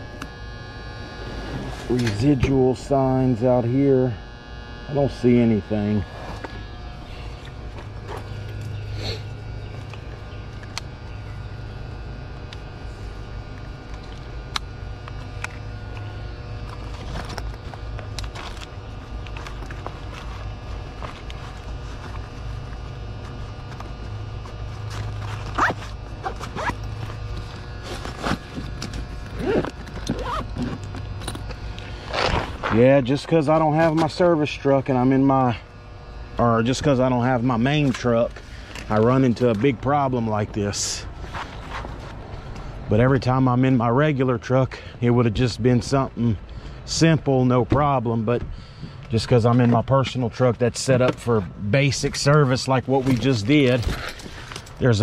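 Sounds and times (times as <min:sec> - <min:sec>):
low electrical hum: 0:00.0 - 0:55.0
zipper: 0:25.4 - 0:26.8, 0:29.3 - 0:30.9.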